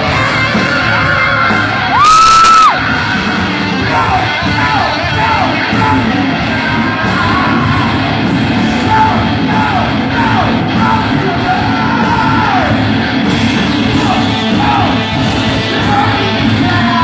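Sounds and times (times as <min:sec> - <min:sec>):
drums: 0:00.0 - 0:17.0
electric guitars: 0:00.0 - 0:17.0
vocals: 0:00.0 - 0:17.0.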